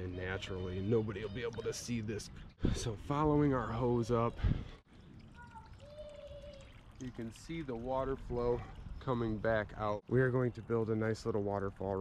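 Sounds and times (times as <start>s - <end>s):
water trickling into pond: 0.0s - 12.0s.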